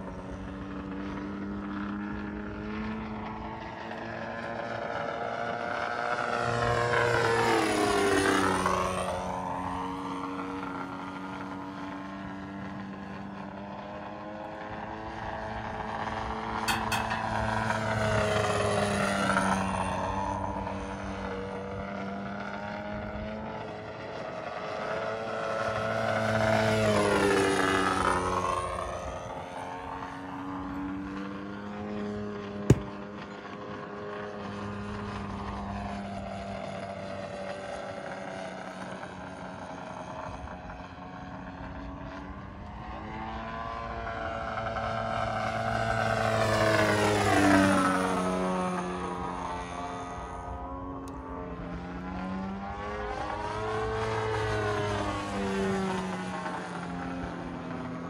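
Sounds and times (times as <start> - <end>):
model airplane engine flying past: 0.0 - 58.0.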